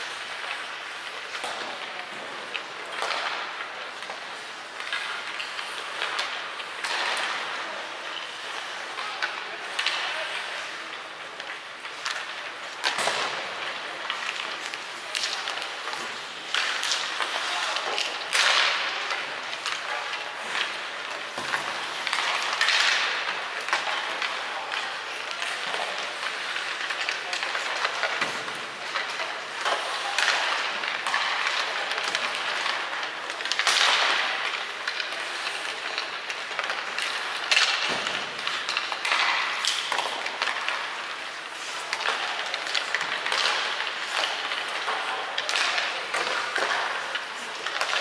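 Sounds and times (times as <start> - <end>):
hockey sticks and pucks clicking: 0.0 - 48.0
skate blades scraping ice: 0.0 - 48.0.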